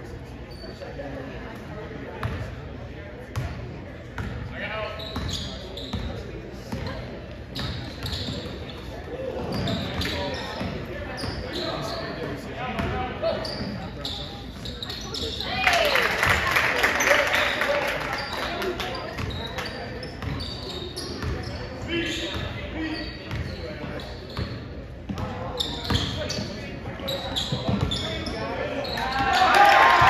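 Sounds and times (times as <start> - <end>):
echoing voices in gym: 0.0 - 30.0.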